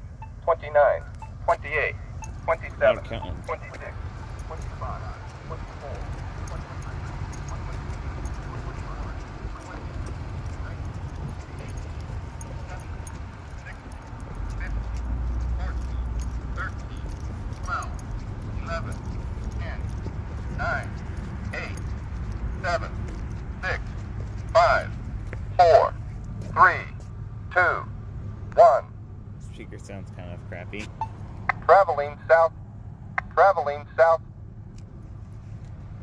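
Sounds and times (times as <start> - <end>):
pedestrian signal voice counting: 0.0 - 27.9, 29.5 - 32.5, 33.2 - 34.2.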